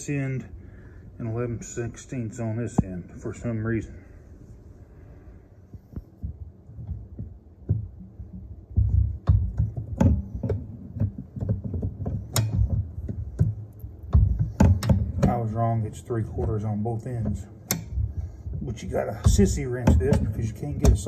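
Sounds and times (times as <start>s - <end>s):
low thumps: 2.6s - 21.0s.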